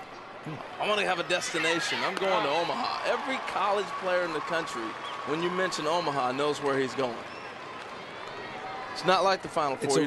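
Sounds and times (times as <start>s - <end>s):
murmur of stadium crowd: 0.0s - 10.0s.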